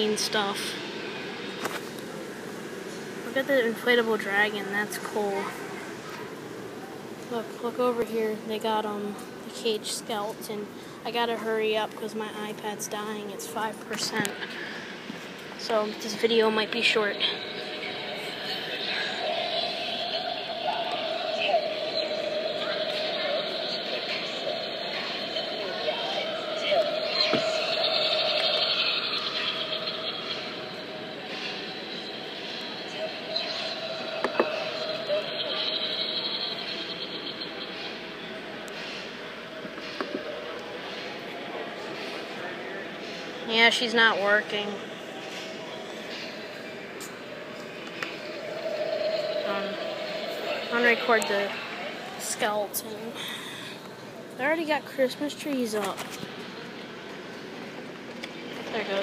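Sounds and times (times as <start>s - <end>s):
constant hum: 0.0s - 59.0s
indoor background noise: 0.0s - 59.0s.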